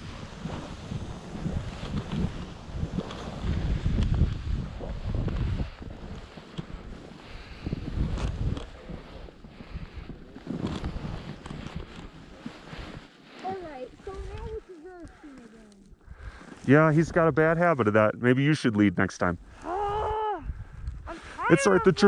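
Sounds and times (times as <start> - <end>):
wind buffeting microphone: 0.0 - 15.3, 19.4 - 22.0
skis hissing through snow: 0.0 - 15.6.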